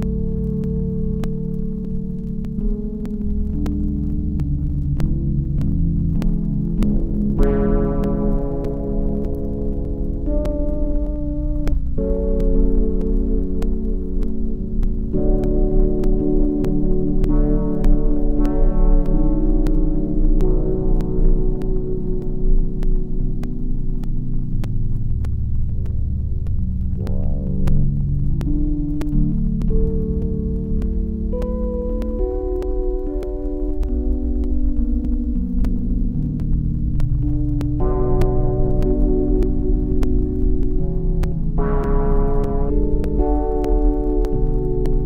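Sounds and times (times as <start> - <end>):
low throbbing bass: 0.0 - 45.0
synthesizer chords: 0.0 - 45.0.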